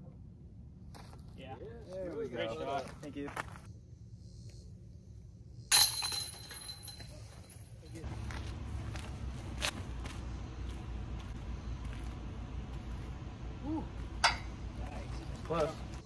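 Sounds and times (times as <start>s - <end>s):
outdoor background noise: 0.0s - 16.0s
disc striking metal basket: 5.7s - 7.2s, 14.2s - 14.6s.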